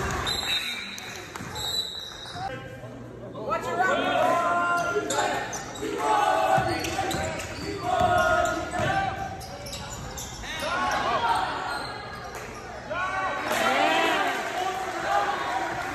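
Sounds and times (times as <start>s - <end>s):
sneakers squeaking: 0.0s - 2.5s, 4.6s - 12.9s
basketball bouncing: 6.6s - 9.4s.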